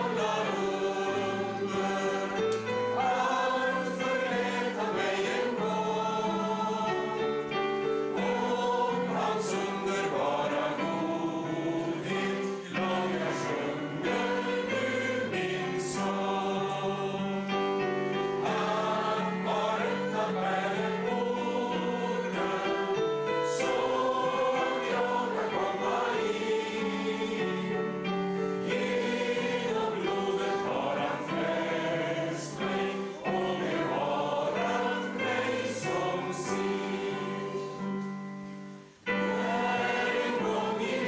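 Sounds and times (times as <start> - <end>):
congregation singing a hymn: 0.0 - 41.0.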